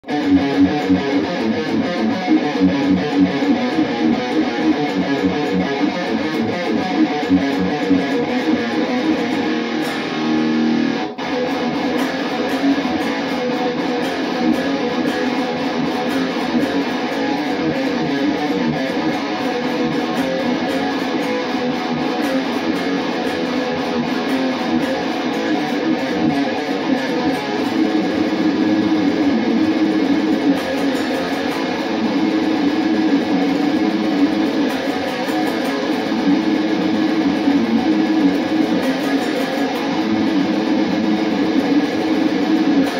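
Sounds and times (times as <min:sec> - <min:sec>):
electric guitar metal riff: 0:00.0 - 0:42.9.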